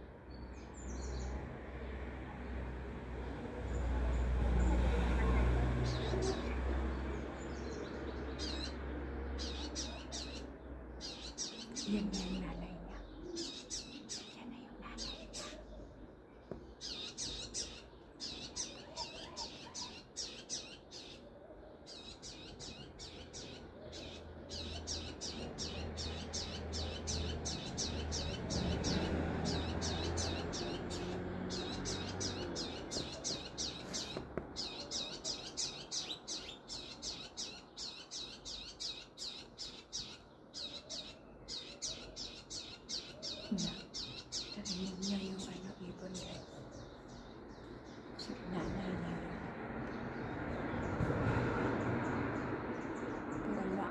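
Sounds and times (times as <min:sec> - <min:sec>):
small birds chirping: 0:00.0 - 0:53.9.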